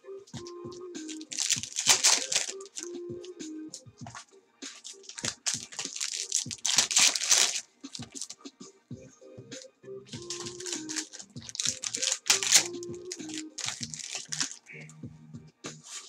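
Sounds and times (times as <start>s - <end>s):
quiet background music: 0.0s - 16.0s
foil wrappers crinkling and tearing: 1.1s - 2.9s, 4.8s - 8.4s, 10.2s - 14.7s.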